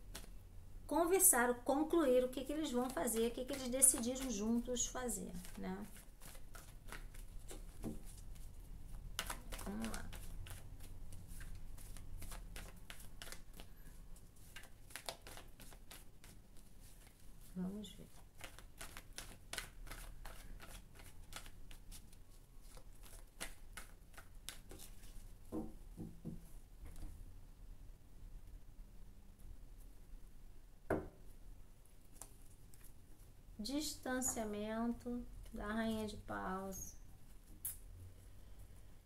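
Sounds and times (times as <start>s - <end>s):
cards being shuffled: 0.0s - 0.4s, 2.6s - 25.3s.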